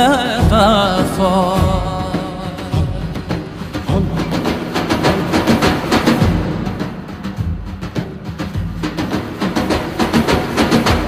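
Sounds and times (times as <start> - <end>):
frame drums and darbukas: 0.0 - 11.0.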